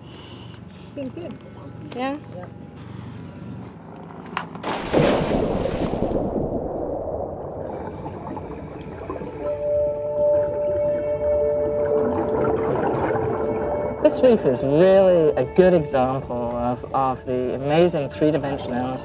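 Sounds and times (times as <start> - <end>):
diver splashing into water: 4.6 - 7.4
muffled wash of water: 4.6 - 9.8
held tones of background music: 7.5 - 19.0.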